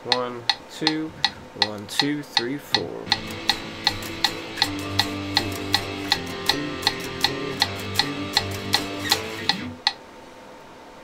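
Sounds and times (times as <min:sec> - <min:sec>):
metronome clicking: 0:00.0 - 0:10.0
electric guitar power chords: 0:03.1 - 0:09.9.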